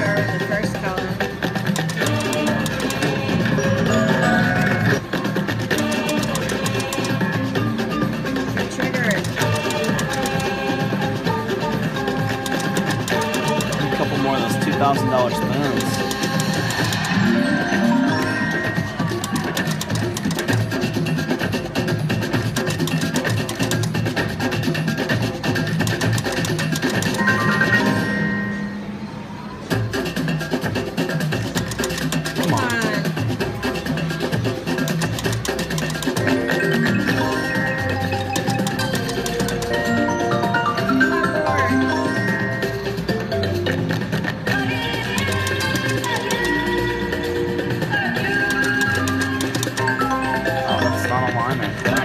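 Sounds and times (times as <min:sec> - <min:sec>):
slot machine reels spinning: 0:00.0 - 0:07.8, 0:08.6 - 0:11.1, 0:11.9 - 0:28.7, 0:31.0 - 0:42.7, 0:44.9 - 0:52.0
slot machine bonus music: 0:00.0 - 0:21.4, 0:22.4 - 0:24.2, 0:25.6 - 0:29.0, 0:31.5 - 0:33.3, 0:34.2 - 0:44.1, 0:45.0 - 0:52.0.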